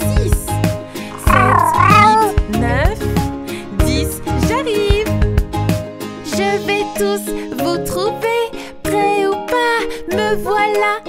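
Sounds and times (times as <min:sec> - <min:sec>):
cartoon kitten meowing: 0:01.2 - 0:02.4.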